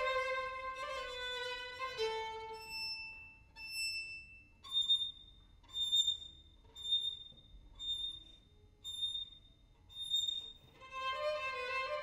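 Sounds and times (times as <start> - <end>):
violin high bowed notes: 0.0 - 3.3.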